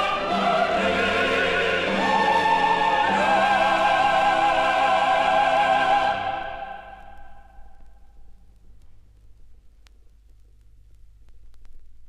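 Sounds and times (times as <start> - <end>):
choir singing with orchestra: 0.0 - 7.5.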